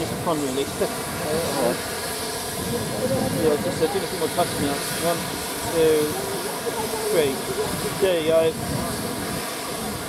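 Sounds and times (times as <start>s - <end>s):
steam locomotive hissing: 0.0s - 10.0s.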